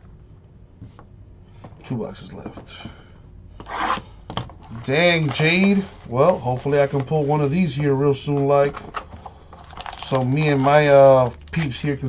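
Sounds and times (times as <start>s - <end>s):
man talking: 1.8s - 3.1s, 4.7s - 8.8s, 10.0s - 12.0s
shrink wrap ripping: 9.6s - 12.0s.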